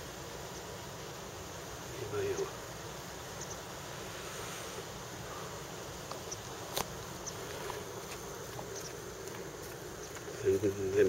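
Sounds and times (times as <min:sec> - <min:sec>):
even hiss: 0:00.0 - 0:11.0
faint high ticks: 0:06.0 - 0:10.7.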